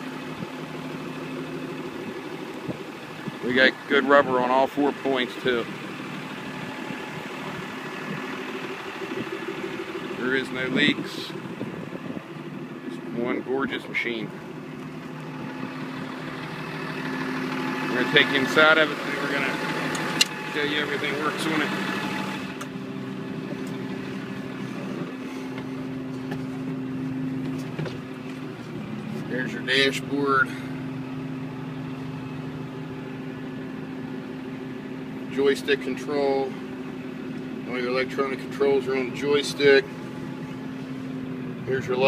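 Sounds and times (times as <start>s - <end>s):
diesel engine idling: 0.0s - 42.0s.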